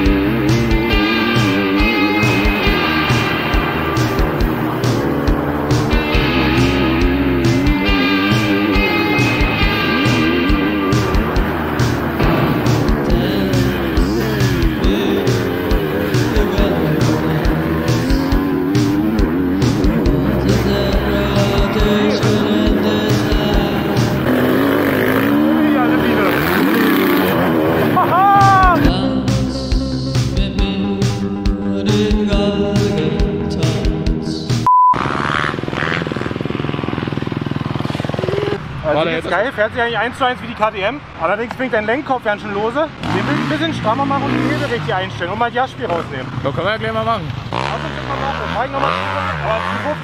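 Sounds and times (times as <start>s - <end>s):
motocross bike engine revving: 0.0s - 31.2s, 35.0s - 40.2s, 42.3s - 50.0s
rock music: 0.0s - 34.7s.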